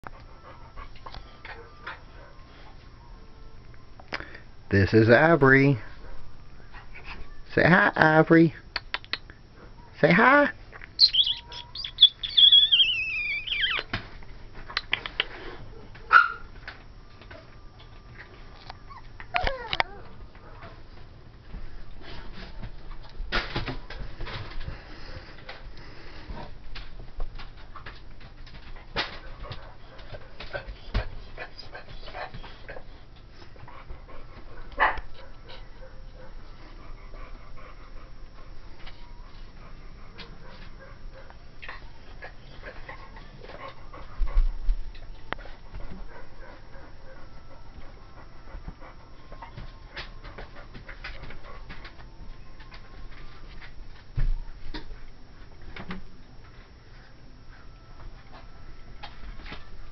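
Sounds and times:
puppy panting: 29.3s - 44.5s, 45.4s - 52.0s.

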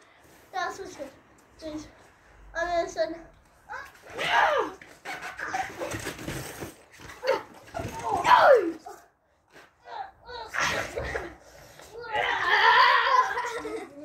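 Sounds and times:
boys yelling and laughing: 3.7s - 4.8s, 7.1s - 9.1s, 9.8s - 14.0s.

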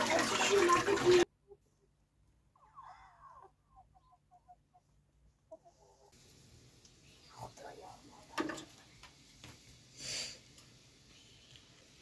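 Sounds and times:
chickens clucking: 2.6s - 6.1s
faint steady hiss: 4.8s - 12.0s.

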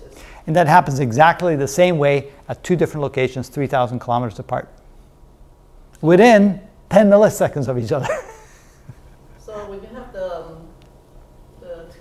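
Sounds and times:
man speaking: 0.4s - 4.8s, 6.0s - 8.3s
man chuckling: 8.0s - 9.4s.

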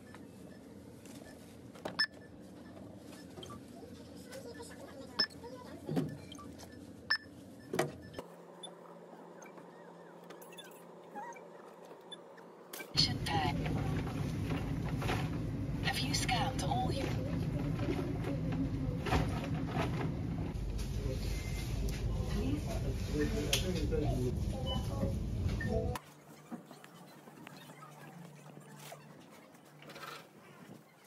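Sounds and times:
shop noise with voices: 0.0s - 31.0s
barcode scanner beeps: 2.0s - 3.6s, 4.5s - 13.5s.

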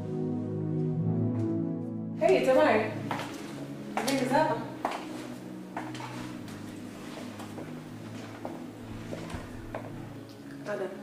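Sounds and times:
low sustained background music: 0.0s - 11.0s.

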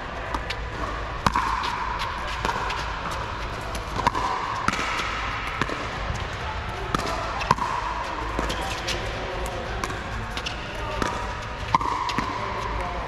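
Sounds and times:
paddles hitting plastic ball: 0.3s - 6.3s, 6.9s - 12.4s.

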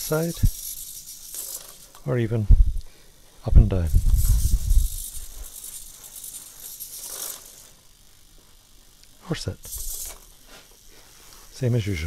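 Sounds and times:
servo motors buzzing and whirring: 0.0s - 12.0s.

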